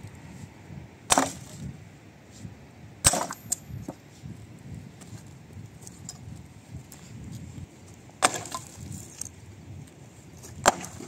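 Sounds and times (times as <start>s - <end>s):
axe chopping log: 1.1s - 1.6s, 3.1s - 3.6s, 8.2s - 8.7s, 10.6s - 11.0s.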